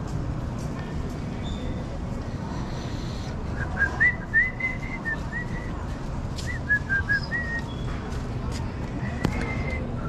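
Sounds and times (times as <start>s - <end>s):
person whistling a tune: 3.6s - 5.8s, 6.5s - 7.8s.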